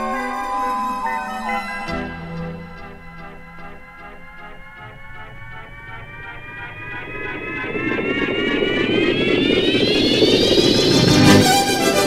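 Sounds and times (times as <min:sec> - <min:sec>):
buzzy synthesizer tone: 0:01.8 - 0:12.0
wash of noise: 0:05.4 - 0:11.7.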